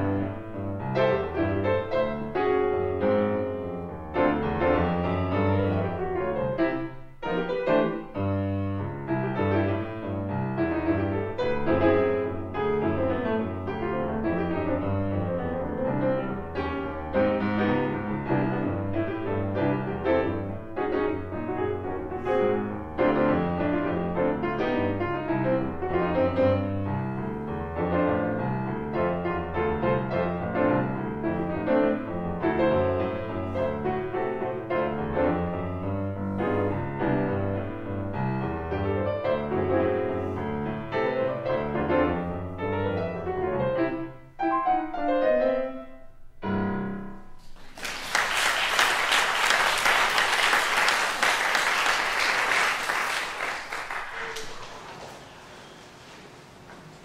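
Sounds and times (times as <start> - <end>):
solo jazz piano: 0.0 - 47.6
audience applause: 47.6 - 55.8.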